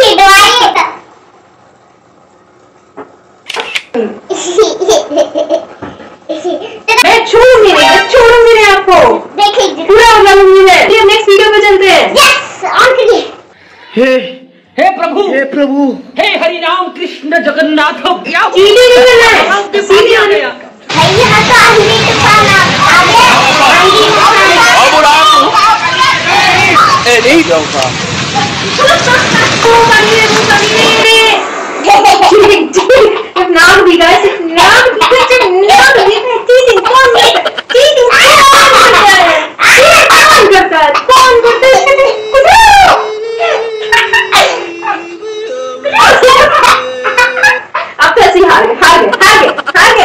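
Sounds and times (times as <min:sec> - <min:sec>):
voices shouting and chattering: 0:18.6 - 0:50.0
loud high wail: 0:20.9 - 0:27.2, 0:38.0 - 0:47.5.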